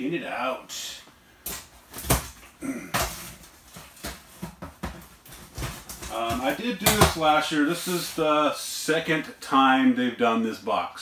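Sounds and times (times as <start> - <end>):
cardboard rustling: 3.0 - 8.3.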